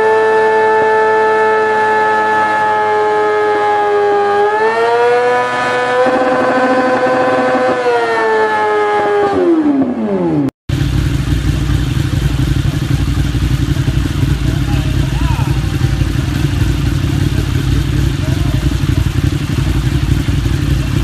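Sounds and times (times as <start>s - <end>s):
low rumbling engine: 0.0s - 21.0s
motorcycle engine revving high: 0.0s - 21.0s.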